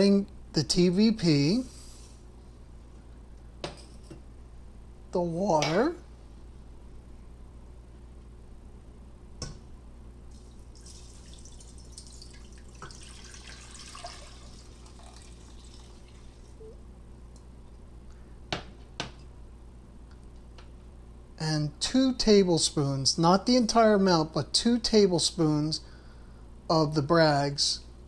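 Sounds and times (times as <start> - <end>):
water pouring into a skillet: 10.8 - 16.5.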